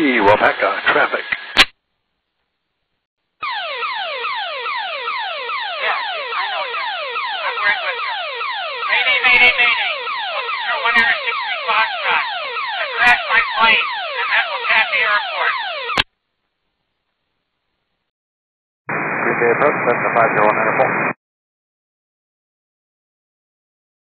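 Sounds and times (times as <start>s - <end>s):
swept alarm tone over radio: 3.4s - 16.1s.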